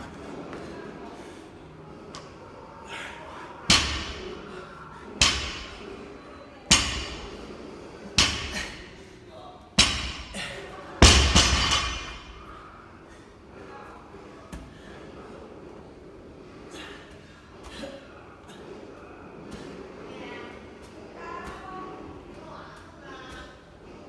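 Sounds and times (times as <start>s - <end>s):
barbell thudding on rubber floor: 9.8s - 10.4s, 11.0s - 12.4s.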